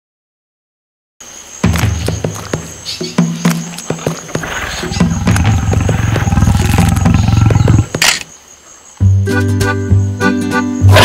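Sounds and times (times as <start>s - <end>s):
large animal growling: 4.3s - 8.0s.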